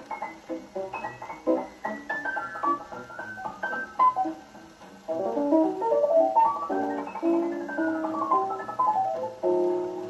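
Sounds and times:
jazz piano record: 0.0 - 10.0.

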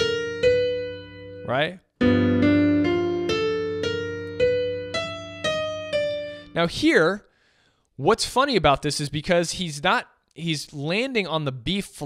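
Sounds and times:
slow bebop piano: 0.0 - 6.6.

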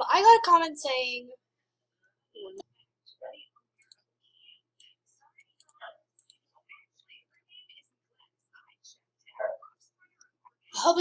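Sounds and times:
person whispering faintly: 2.4 - 11.0.

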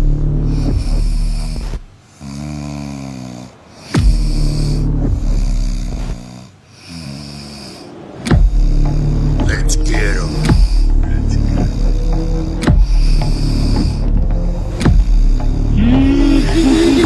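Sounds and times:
man snoring loudly: 0.0 - 17.0.

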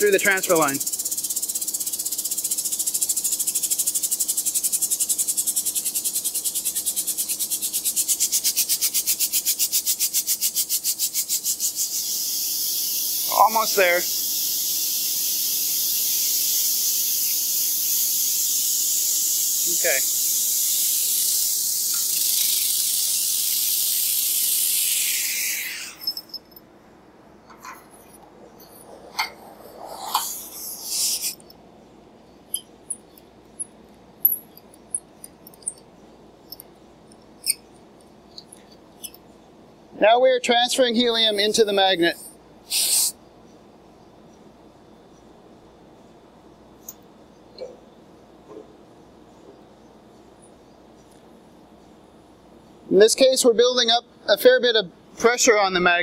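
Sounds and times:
gas hissing in rapid pulses: 0.0 - 26.2, 29.6 - 31.5, 42.7 - 43.2.

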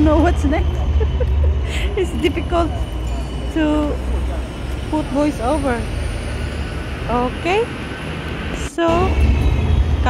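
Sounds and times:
woman speaking: 0.0 - 0.8, 1.7 - 2.9, 3.5 - 4.0, 4.9 - 5.9, 7.1 - 7.7, 8.6 - 9.2
tram rumbling past: 0.0 - 10.0.

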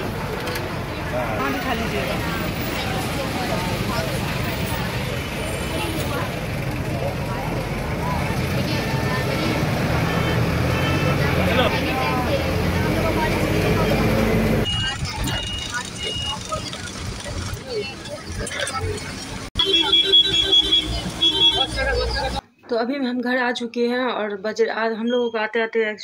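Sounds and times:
bus engine running by: 0.0 - 19.6
crowd voices: 0.0 - 22.5
people talking inside vehicle: 0.0 - 22.5
traffic noise: 0.0 - 22.7.

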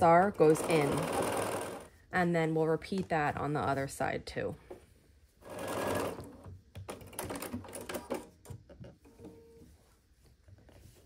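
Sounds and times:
sewing machine stitching: 0.4 - 1.9, 5.4 - 8.3.

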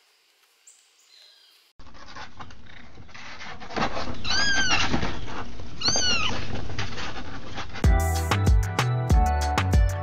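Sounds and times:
kitten meowing: 5.8 - 6.4.

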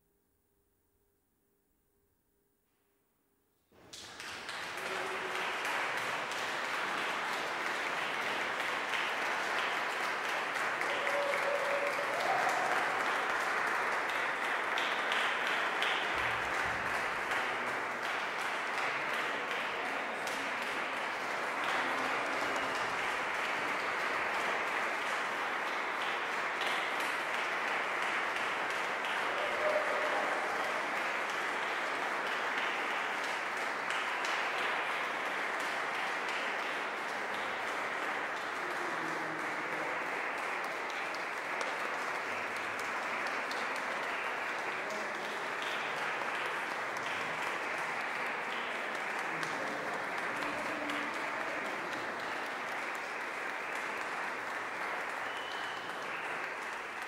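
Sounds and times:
audience applause: 3.8 - 57.0.

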